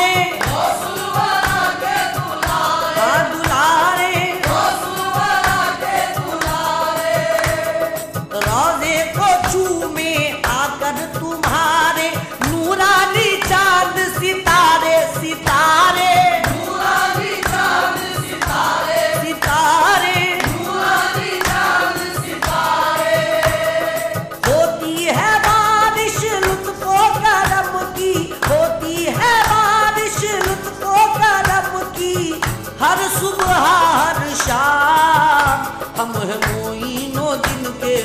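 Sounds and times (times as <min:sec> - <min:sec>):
hand percussion beat: 0:00.0 - 0:38.0
voices singing together: 0:00.0 - 0:38.0.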